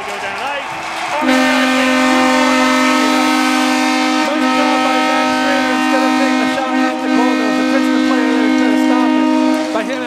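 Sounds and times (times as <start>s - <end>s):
arena horn chord: 1.2s - 10.0s.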